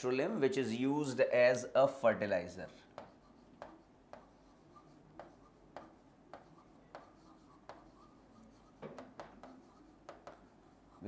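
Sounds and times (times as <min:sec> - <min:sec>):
pen tapping on writing board: 0:03.0 - 0:04.4, 0:05.2 - 0:10.5.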